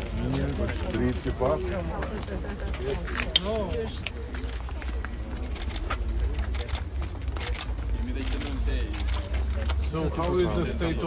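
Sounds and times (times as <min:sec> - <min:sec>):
people talking outdoors: 0:00.0 - 0:11.0.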